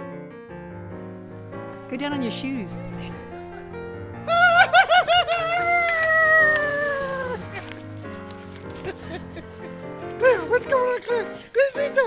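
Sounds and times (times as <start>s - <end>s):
background music: 0.7s - 12.0s
person whooping: 4.2s - 7.8s.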